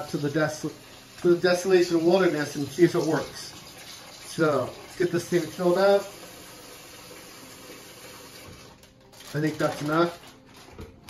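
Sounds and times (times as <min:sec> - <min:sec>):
faucet running into plastic bag: 0:00.0 - 0:11.0.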